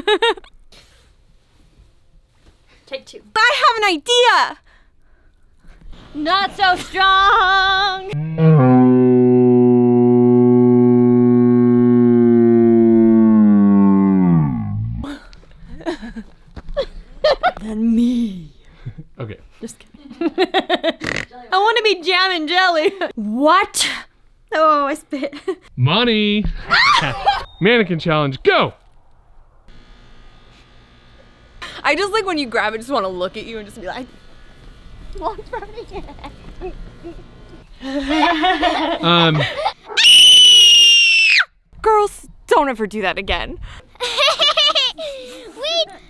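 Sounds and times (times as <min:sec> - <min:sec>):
laughter: 0:00.0 - 0:00.5, 0:15.7 - 0:17.6, 0:20.0 - 0:21.0, 0:37.8 - 0:40.0, 0:43.9 - 0:45.5
electrical buzz with low hum: 0:05.0 - 0:19.5, 0:24.1 - 0:39.8
woman singing long low note: 0:08.1 - 0:12.7
thin whine: 0:08.1 - 0:15.1, 0:26.2 - 0:39.5.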